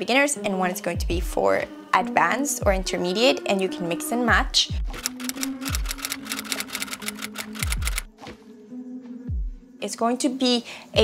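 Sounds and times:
background music: 0.0 - 11.0
rapid typing clicks: 5.0 - 8.1.

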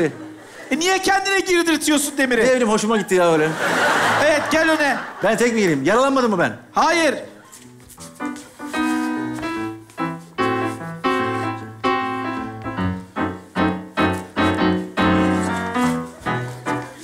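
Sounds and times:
piano melody: 6.6 - 17.0.

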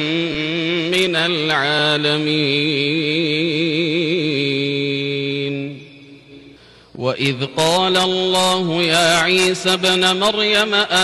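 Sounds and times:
man chanting over loudspeakers: 0.0 - 11.0.

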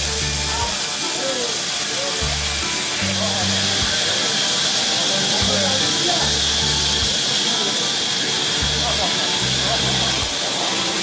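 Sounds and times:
background music: 0.0 - 11.0
band saw cutting wood: 0.0 - 11.0.

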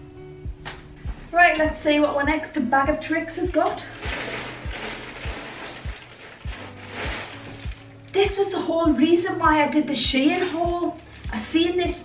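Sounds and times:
background music with low beat: 0.0 - 12.0
plastic packaging rustling: 3.5 - 8.5, 10.2 - 11.2.

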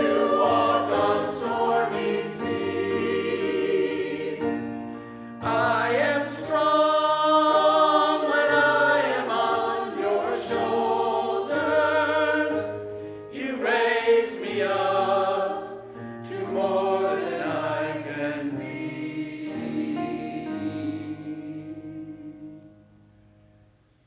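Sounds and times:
church choir singing: 0.0 - 22.8.

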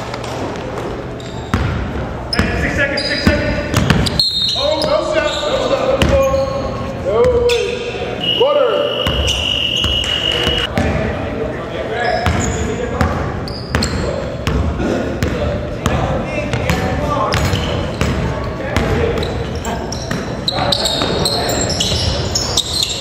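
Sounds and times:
players' voices echoing: 0.0 - 23.0
sneakers squeaking on floor: 0.4 - 10.9, 12.0 - 23.0
basketball bouncing on hardwood: 3.7 - 4.1.

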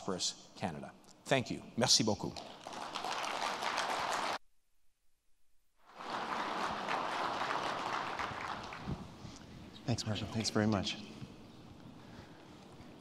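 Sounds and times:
audience applauding: 2.4 - 4.4, 5.9 - 9.1.

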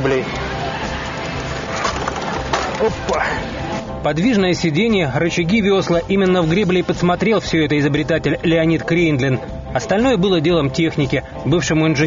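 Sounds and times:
cart rattling over asphalt: 0.0 - 3.2.

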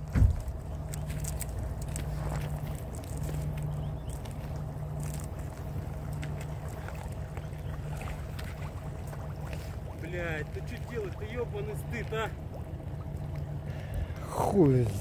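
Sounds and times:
vehicle engine idling: 0.0 - 15.0.

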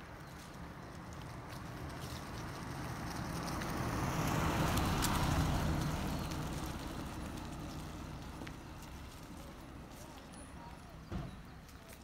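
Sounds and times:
car passing by: 1.4 - 9.9.

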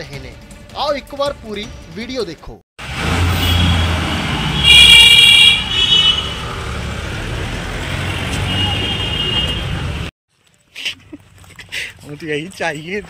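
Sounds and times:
vehicle horn: 3.3 - 6.4, 8.0 - 9.9.

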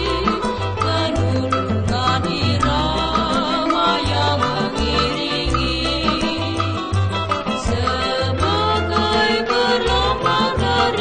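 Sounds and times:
low bass notes: 0.0 - 11.0
small ensemble playing kroncong music: 0.0 - 11.0.

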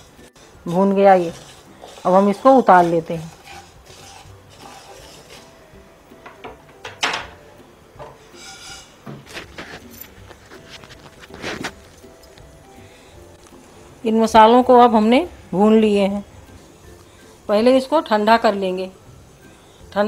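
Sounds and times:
utensils clinking against pan: 0.0 - 5.6, 6.2 - 7.4, 8.0 - 11.3
faint background music: 0.0 - 20.0.

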